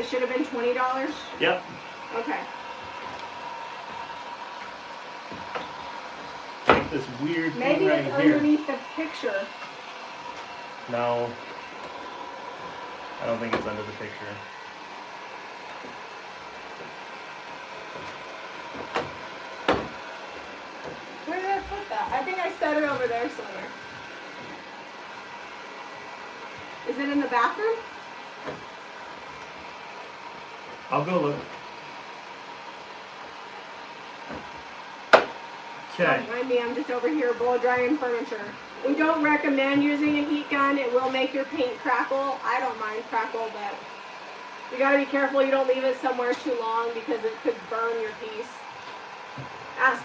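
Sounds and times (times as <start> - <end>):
heat gun blowing hot air: 0.1 - 50.0.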